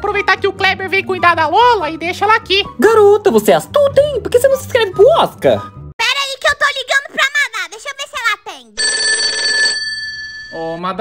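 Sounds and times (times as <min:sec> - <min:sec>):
phone ringtone: 0:08.8 - 0:11.0.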